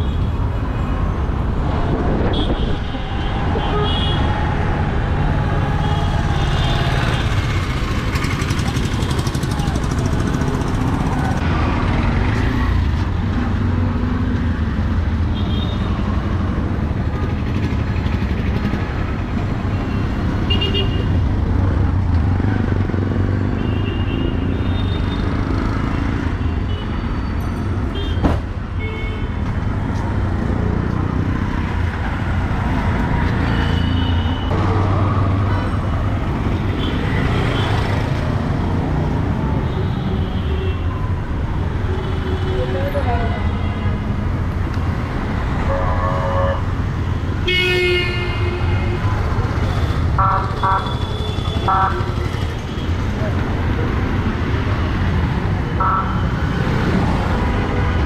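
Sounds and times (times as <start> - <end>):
traffic rumble: 0.0 - 58.0.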